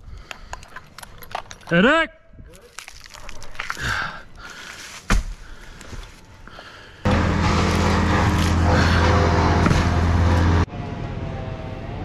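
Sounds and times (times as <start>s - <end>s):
chainsaw running at high revs: 7.1s - 10.6s.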